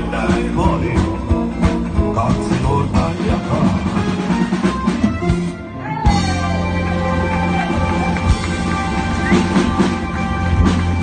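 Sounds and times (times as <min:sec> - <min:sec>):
man singing a ballad: 0:00.0 - 0:03.9
bass guitar: 0:00.0 - 0:11.0
drum kit: 0:00.0 - 0:11.0
keyboard: 0:00.0 - 0:11.0.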